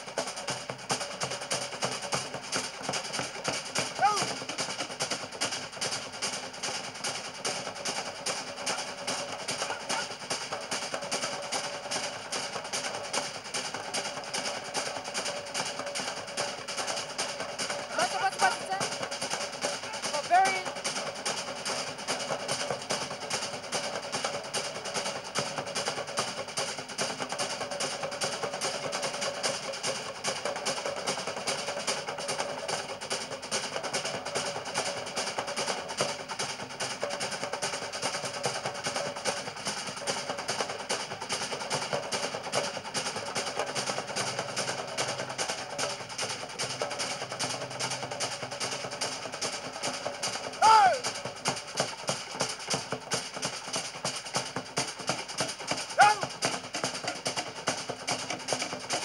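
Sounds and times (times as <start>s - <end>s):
rapid steady drumming: 0.0s - 59.0s
person shouting: 4.0s - 4.3s, 50.6s - 51.0s, 56.0s - 56.2s.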